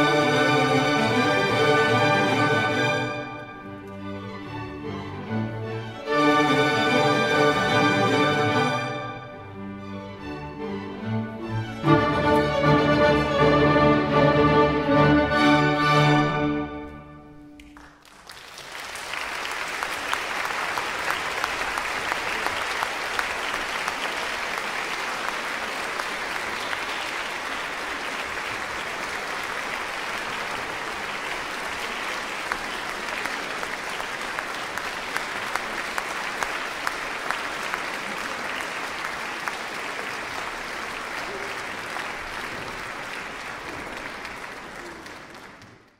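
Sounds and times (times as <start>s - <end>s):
audience applauding: 17.5s - 45.9s.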